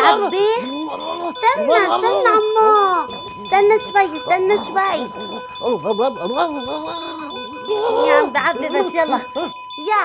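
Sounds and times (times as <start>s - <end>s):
high electronic tone: 0.0s - 10.0s
person vocalizing without words: 6.6s - 8.3s.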